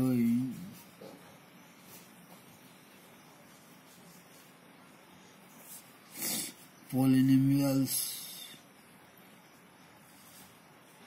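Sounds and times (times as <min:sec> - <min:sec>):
man reading aloud: 0:00.0 - 0:00.8, 0:06.8 - 0:08.7
faint room hiss: 0:00.0 - 0:11.0.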